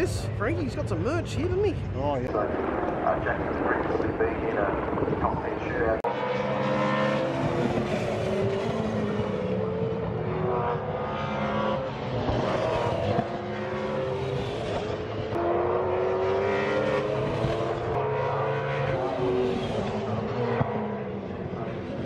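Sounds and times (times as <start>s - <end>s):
racing car engines accelerating: 0.0s - 22.0s.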